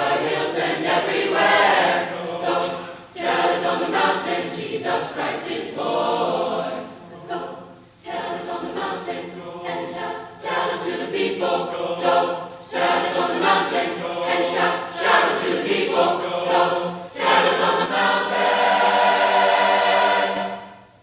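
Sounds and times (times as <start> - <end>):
choir singing in parts: 0.0 - 21.0.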